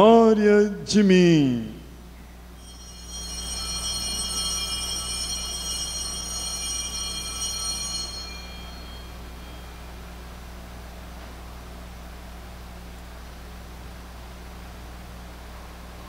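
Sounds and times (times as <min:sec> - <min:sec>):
steady low hum: 0:00.0 - 0:16.0
altar bells ringing: 0:02.6 - 0:10.1.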